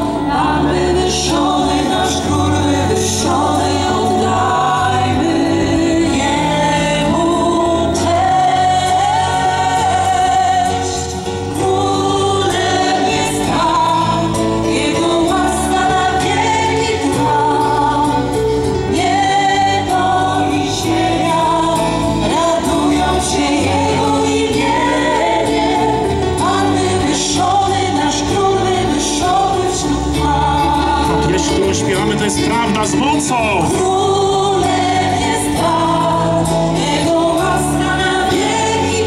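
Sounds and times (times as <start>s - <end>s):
live worship band with singers: 0.0s - 39.0s.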